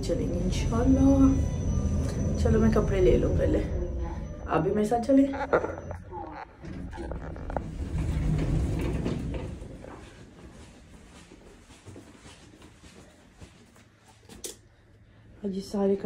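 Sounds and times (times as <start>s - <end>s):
low rolling rumble: 0.0s - 10.1s.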